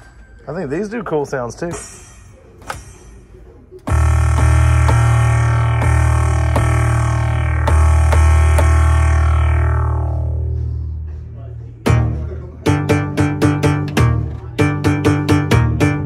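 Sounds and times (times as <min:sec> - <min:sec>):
long ringing tone: 0:03.9 - 0:11.8
electronic drum pads pitched notes: 0:03.9 - 0:16.0.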